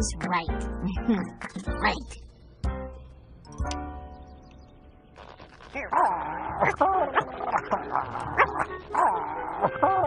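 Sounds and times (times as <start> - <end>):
cartoon puppy cries: 5.9 - 10.0
cartoon puppy laughing: 6.6 - 10.0.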